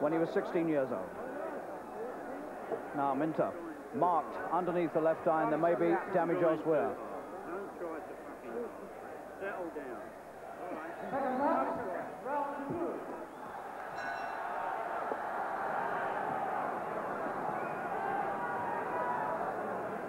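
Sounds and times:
crowd voices and shouts: 0:00.0 - 0:20.0.

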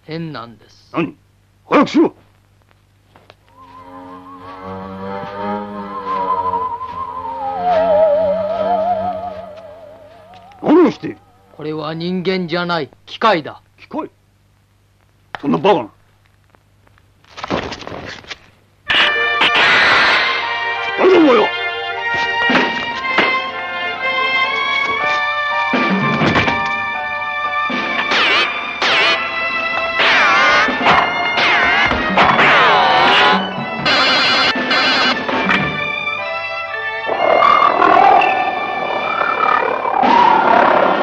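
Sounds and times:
loud wavering cry: 0:03.5 - 0:11.6, 0:29.9 - 0:35.2, 0:37.0 - 0:41.0
dramatic soundtrack chord: 0:03.6 - 0:11.8, 0:20.4 - 0:39.1.

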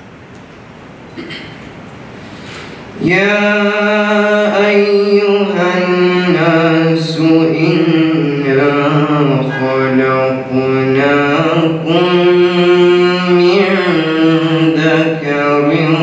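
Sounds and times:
male voice chanting recitation: 0:03.0 - 0:16.0.

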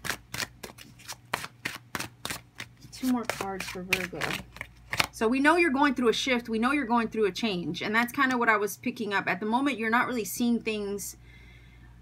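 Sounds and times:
cards being shuffled: 0:00.0 - 0:05.2.

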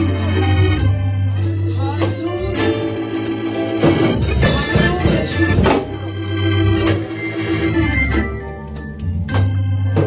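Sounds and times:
organ sustained chords: 0:00.0 - 0:10.0.

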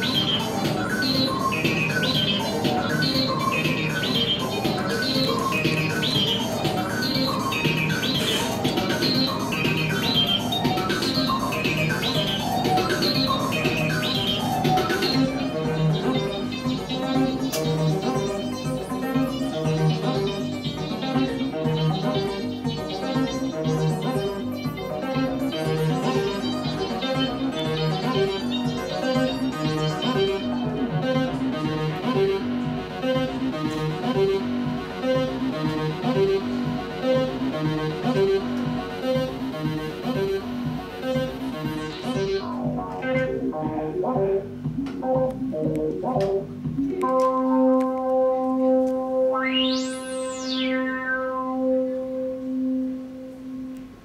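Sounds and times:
modular synthesizer electronic music: 0:00.0 - 0:54.0.

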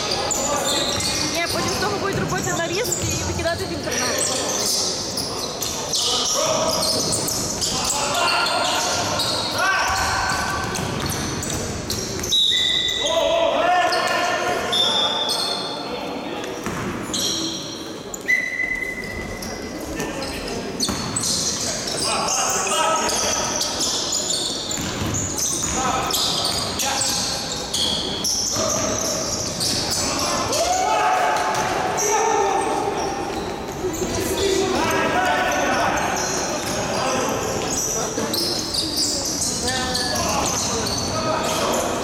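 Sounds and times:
players shouting: 0:30.0 - 0:33.2.

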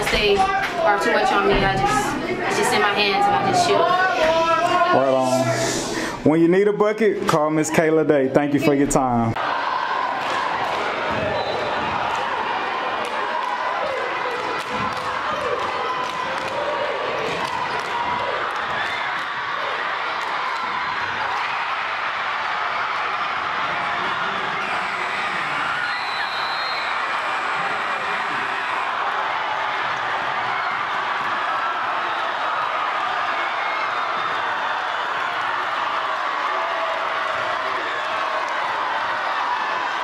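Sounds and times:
crowd cheering and shouting: 0:00.0 - 0:06.0, 0:08.6 - 0:40.0.

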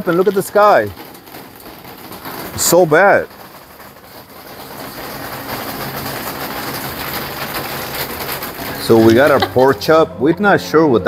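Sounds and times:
rain falling steadily: 0:00.0 - 0:10.1.

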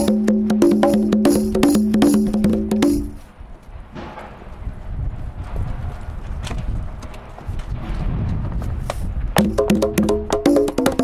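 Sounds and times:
low thuds on conga: 0:00.0 - 0:03.2, 0:09.4 - 0:11.0.

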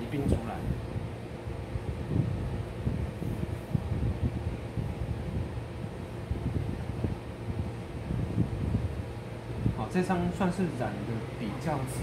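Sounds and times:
low rumble of room noise: 0:00.0 - 0:12.0.

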